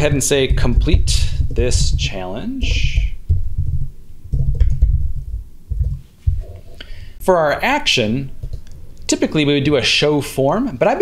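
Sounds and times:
keyboard typing: 0:01.3 - 0:06.8.

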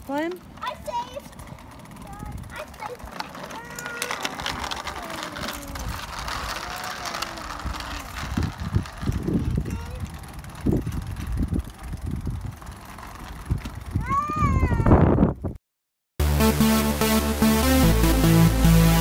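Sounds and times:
child calling out: 0:14.0 - 0:15.0.

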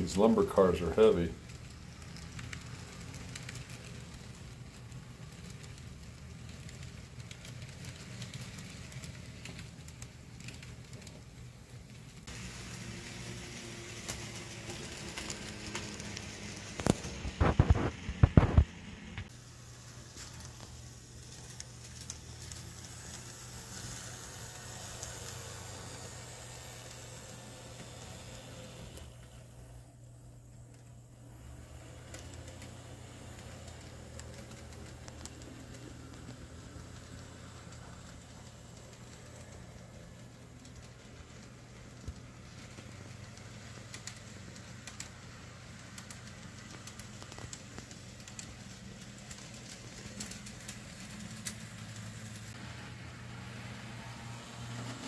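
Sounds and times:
model train motor hum: 0:00.0 - 0:55.0
wheels rattling on rails: 0:00.0 - 0:55.0.

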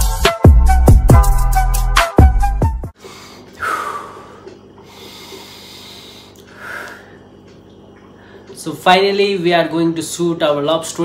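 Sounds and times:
faint breathing: 0:03.0 - 0:07.4, 0:08.1 - 0:08.6.

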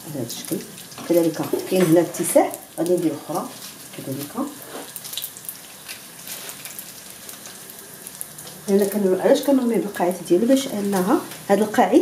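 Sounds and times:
oil sizzling: 0:00.0 - 0:12.0
small crackles and pops: 0:00.2 - 0:11.5.

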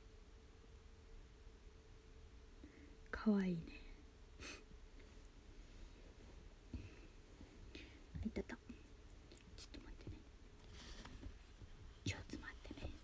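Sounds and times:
person whispering: 0:08.2 - 0:10.3, 0:12.0 - 0:13.0.

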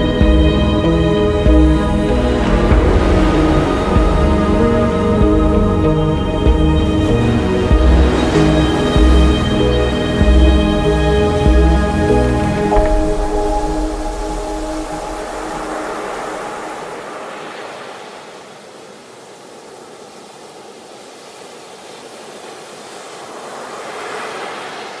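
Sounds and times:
soft music: 0:00.0 - 0:17.3
waves breaking on shore: 0:00.0 - 0:25.0.

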